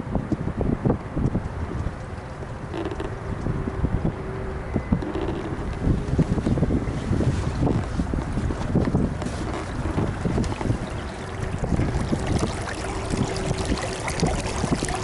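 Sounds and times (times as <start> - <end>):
boat moving through water: 0.0 - 15.0
wind buffeting microphone: 0.0 - 15.0.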